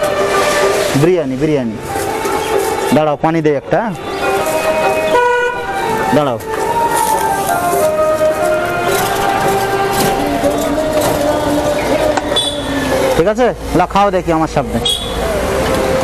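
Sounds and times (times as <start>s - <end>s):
street traffic: 0.0s - 16.0s
vehicle horn toot: 4.0s - 10.1s, 11.0s - 13.1s, 14.8s - 16.0s.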